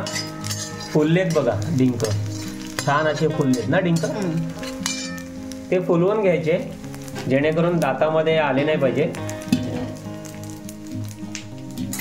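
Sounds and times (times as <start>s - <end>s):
background music: 0.0s - 12.0s
faint sizzle and crackle in ghee: 0.0s - 12.0s.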